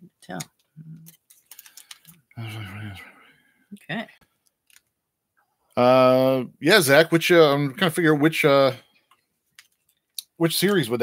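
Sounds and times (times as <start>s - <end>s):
foil card packs clicking and crinkling: 1.1s - 2.2s
murmured voice: 2.4s - 3.2s.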